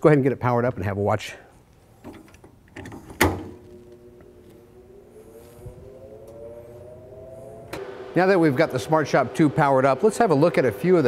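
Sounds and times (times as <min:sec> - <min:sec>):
machine hum rising in pitch: 0:03.5 - 0:11.0.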